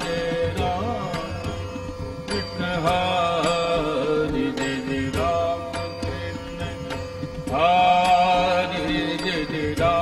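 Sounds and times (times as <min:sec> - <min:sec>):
sharp percussion strikes: 0:00.0 - 0:10.0
voices singing devotional music: 0:00.0 - 0:10.0.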